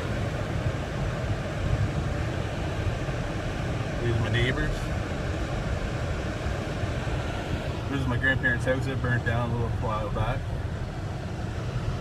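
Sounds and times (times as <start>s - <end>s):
car interior road and engine rumble: 0.0s - 12.0s.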